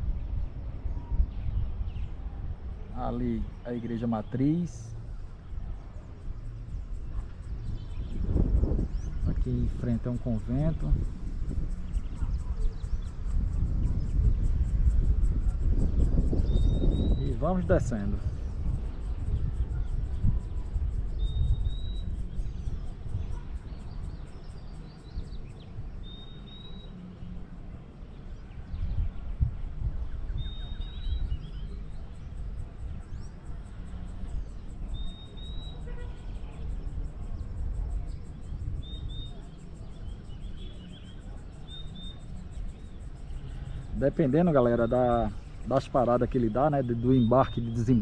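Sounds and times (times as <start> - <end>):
wind buffeting microphone: 0.0 - 48.0
bird chirping: 3.0 - 27.4, 30.0 - 48.0.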